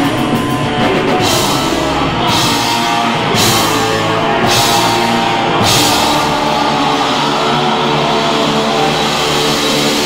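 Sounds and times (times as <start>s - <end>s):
electric guitars ringing chord: 1.0s - 10.0s.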